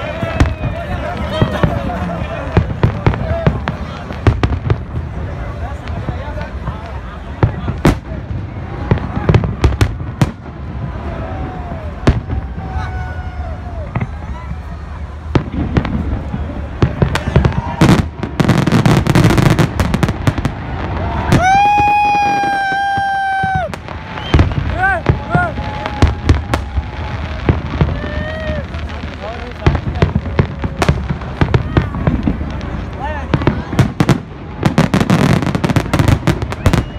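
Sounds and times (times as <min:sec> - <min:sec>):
crowd voices: 0:00.0 - 0:36.9
fireworks bangs and crackles: 0:00.0 - 0:36.9.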